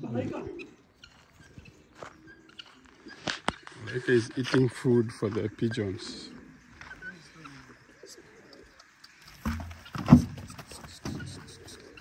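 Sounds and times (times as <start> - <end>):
pigeons cooing: 0.0 - 4.4, 5.0 - 12.0.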